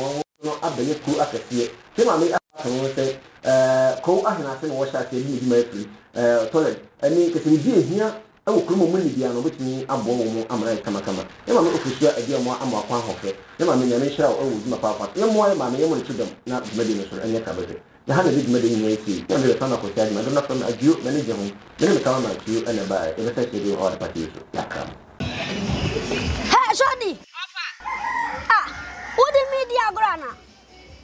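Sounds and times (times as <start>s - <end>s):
man talking: 0.0s - 25.0s.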